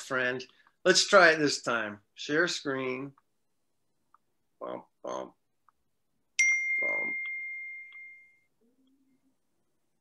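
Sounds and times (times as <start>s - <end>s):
high chime ringing: 6.4s - 8.6s.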